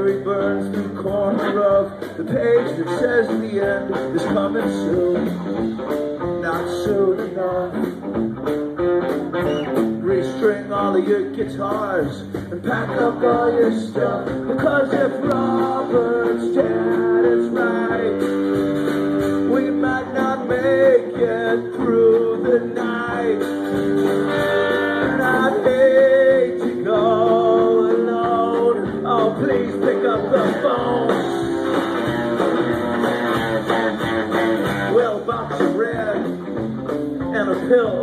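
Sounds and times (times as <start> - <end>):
male lead vocal: 0.0 - 5.5, 6.2 - 8.0, 9.3 - 18.5, 19.3 - 23.6, 24.3 - 31.6, 34.7 - 36.4, 37.2 - 38.0
rock band playing live: 0.0 - 38.0.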